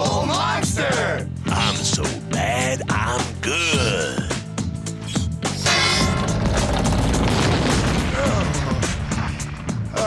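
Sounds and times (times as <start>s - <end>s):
background music: 0.0s - 10.0s
wall smashing crash: 6.0s - 8.6s
crumbling debris rumble: 6.4s - 9.6s.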